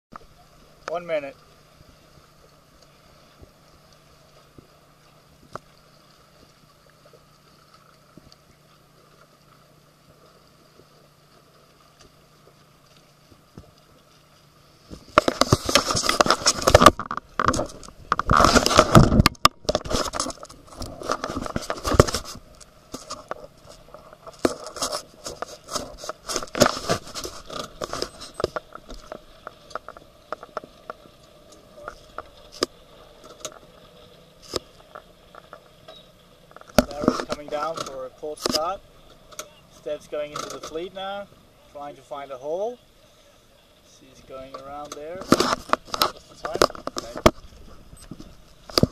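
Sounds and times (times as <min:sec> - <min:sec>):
crackling and scraping on microphone: 0:00.1 - 0:42.8, 0:44.0 - 0:48.9
faint steady hum: 0:00.2 - 0:48.9.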